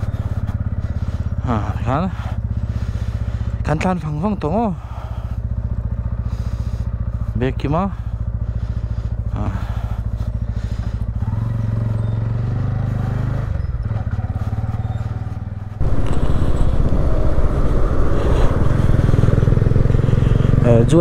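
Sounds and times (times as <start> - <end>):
motorcycle engine: 0.0 - 21.0
wind rush: 15.8 - 20.7.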